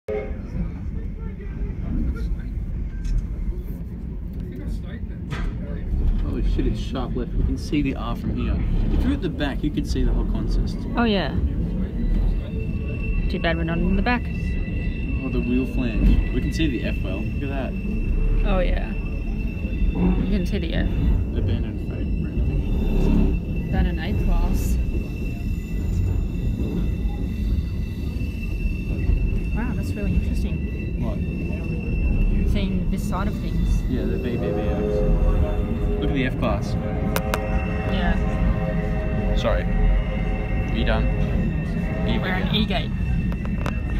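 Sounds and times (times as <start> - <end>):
faint passenger voices: 0.1 - 39.8
train carriage rumbling on tracks: 0.1 - 43.9.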